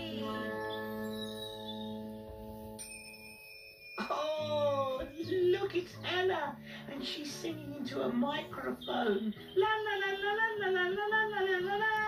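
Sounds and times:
bright chime: 0:00.0 - 0:05.1.

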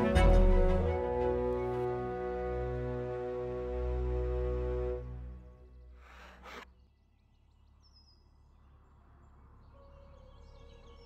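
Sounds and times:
soft music with held notes: 0:00.0 - 0:05.7
bird chirps: 0:05.6 - 0:11.0.

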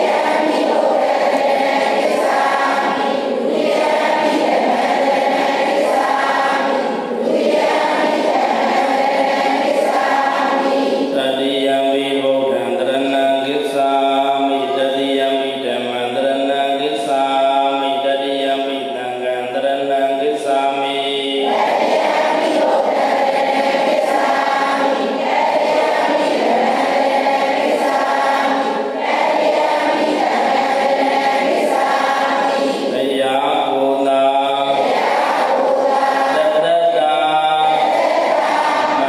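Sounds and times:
group of voices chanting: 0:00.0 - 0:39.0.

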